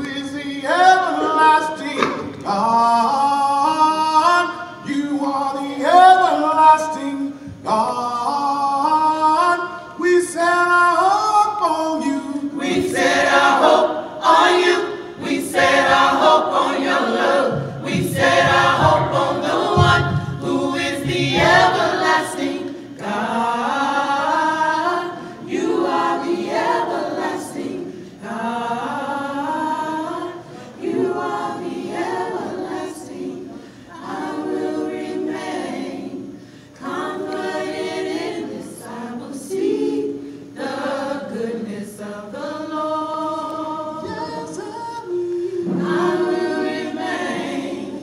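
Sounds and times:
vocal ensemble singing a cappella: 0.0 - 48.0.

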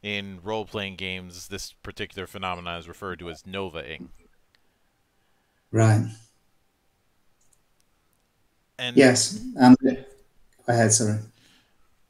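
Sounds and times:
person speaking: 0.0 - 4.2, 8.8 - 11.3
faint clicks: 4.4 - 4.7, 7.4 - 8.4.

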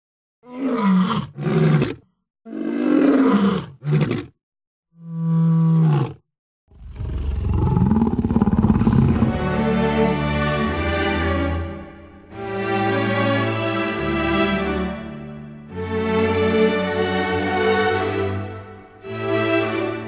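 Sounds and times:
deep animal roars: 5.0 - 9.6
music: 8.6 - 20.0.

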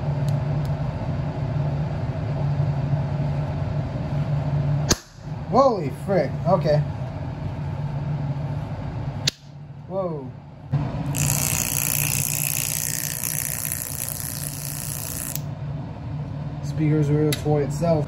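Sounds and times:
electrical hum: 0.0 - 18.0.

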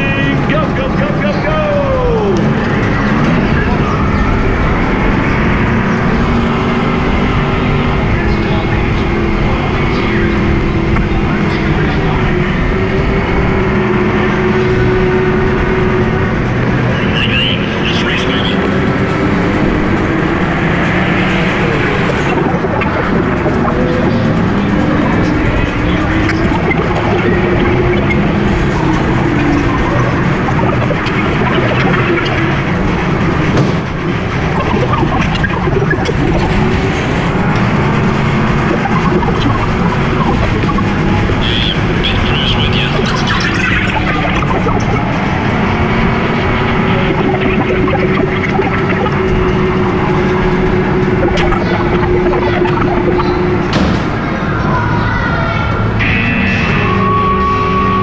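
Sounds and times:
steady rush of noise: 0.0 - 58.0.

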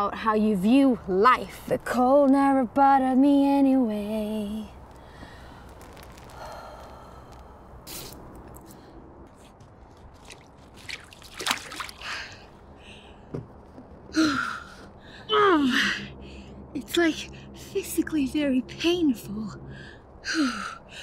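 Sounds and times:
water splashing and dripping: 10.1 - 12.4.

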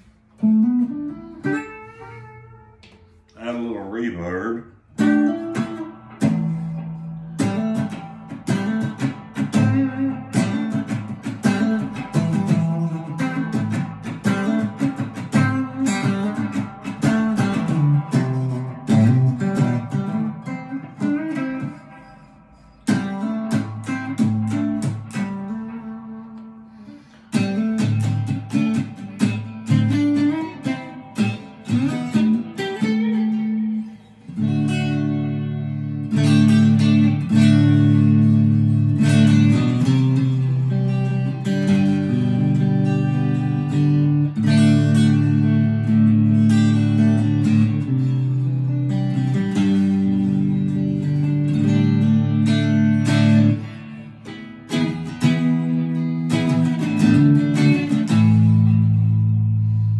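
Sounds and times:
clean electric guitar chords: 0.0 - 59.9.

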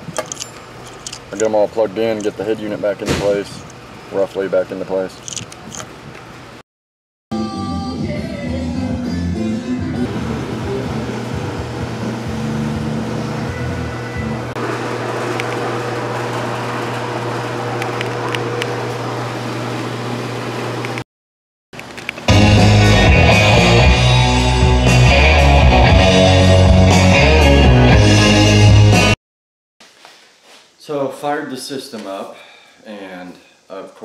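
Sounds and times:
rock music through car stereo: 22.3 - 29.2.

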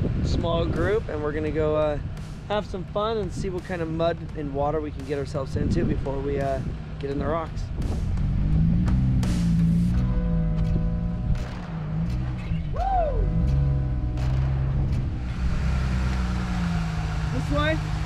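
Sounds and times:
engine revving under load: 5.0 - 18.0.

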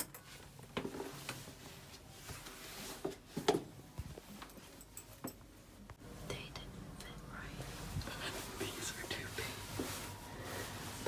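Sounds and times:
faint whispering: 6.1 - 9.7.

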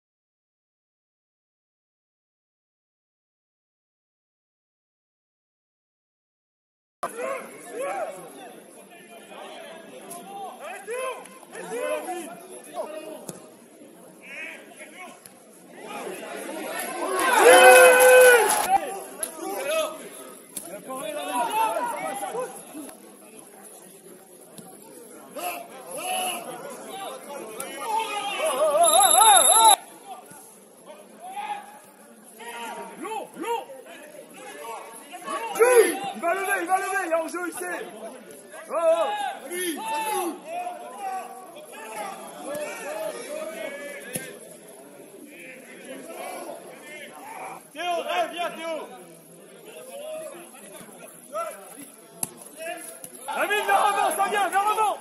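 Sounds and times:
voices shouting outdoors: 27.8 - 29.8.

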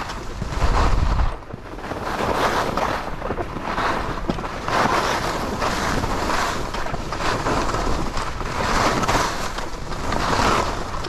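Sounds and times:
skis scraping over snow: 0.0 - 11.0
wind buffeting microphone: 0.0 - 11.0.

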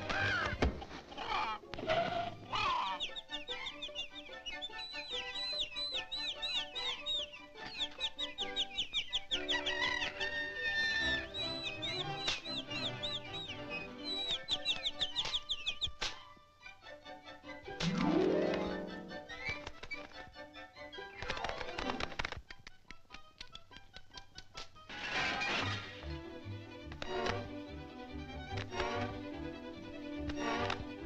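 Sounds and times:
cartoon chicks peeping: 0.0 - 16.3
film score music: 0.0 - 31.0.

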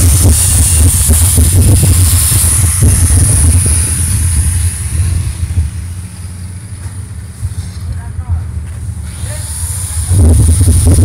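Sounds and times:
large engine rumbling: 0.0 - 11.0.

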